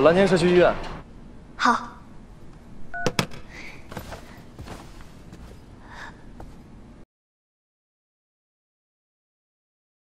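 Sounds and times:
smartphone beep: 0:02.9 - 0:03.2.

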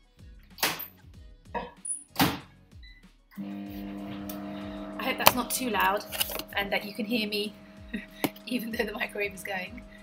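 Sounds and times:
microwave beep: 0:02.8 - 0:10.0
microwave humming: 0:03.4 - 0:10.0.

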